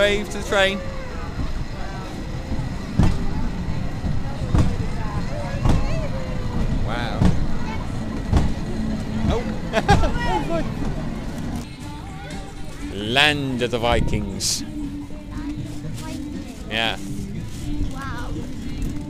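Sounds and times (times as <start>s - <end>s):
train wheels clunking: 0.0s - 11.7s
small train rumbling on rails: 0.0s - 19.0s.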